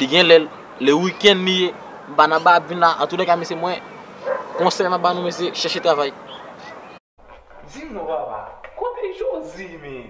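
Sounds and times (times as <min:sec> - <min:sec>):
man talking rapidly: 0:00.0 - 0:03.8, 0:04.6 - 0:06.2.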